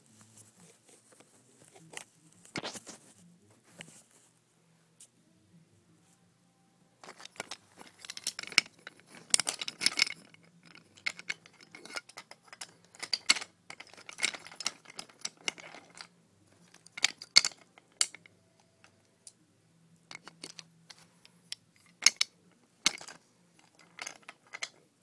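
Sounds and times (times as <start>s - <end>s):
wooden toy pieces clattering: 7.0s - 18.3s, 20.1s - 21.0s, 21.8s - 24.8s.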